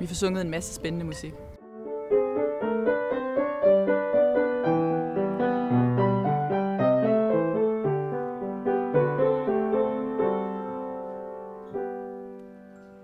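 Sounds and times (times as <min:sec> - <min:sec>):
grand piano melody: 0:00.0 - 0:13.0.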